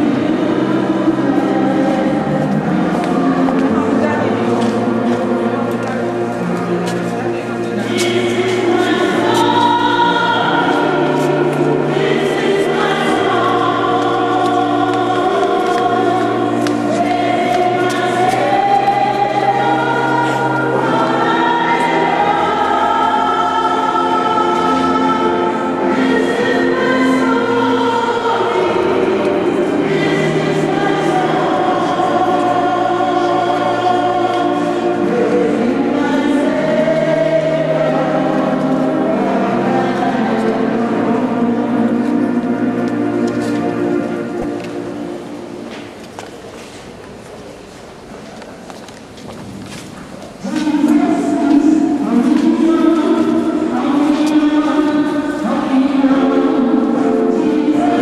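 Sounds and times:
choir singing long notes: 0.0s - 46.7s, 50.3s - 58.0s.

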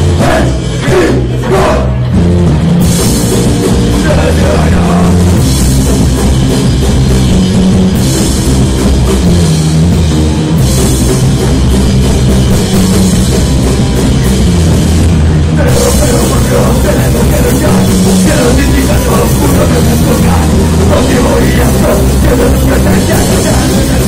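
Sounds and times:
distorted electric guitars: 0.0s - 24.0s
drum kit with cymbals: 0.0s - 24.0s.

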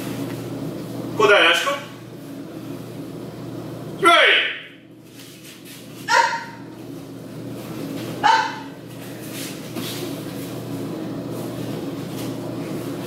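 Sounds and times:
steady low hum: 0.0s - 13.0s
kiai shouts: 6.1s - 6.6s, 8.2s - 8.7s.

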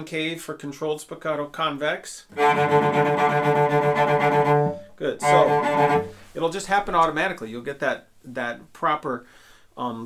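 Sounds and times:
cello rapid bouncing notes: 2.3s - 6.2s.

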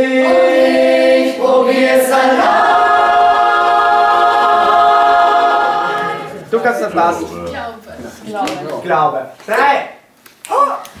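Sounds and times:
mixed choir singing: 0.0s - 7.4s.

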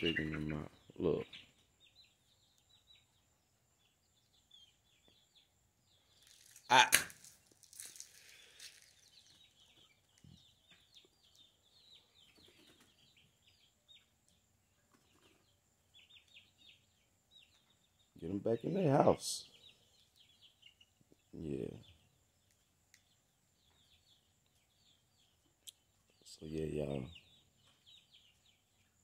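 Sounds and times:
chicks peeping: 0.0s - 29.0s.

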